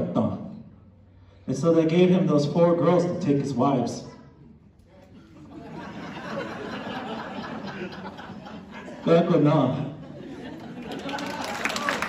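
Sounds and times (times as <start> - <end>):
audience murmuring: 4.2 - 12.0
applause: 10.8 - 12.0.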